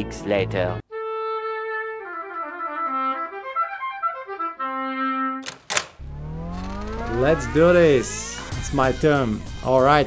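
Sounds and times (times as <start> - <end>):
solo oboe melody: 0.9 - 5.4.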